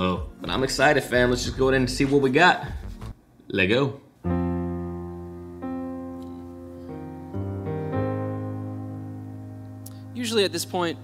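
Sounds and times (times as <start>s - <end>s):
slow piano chords: 4.2s - 11.0s.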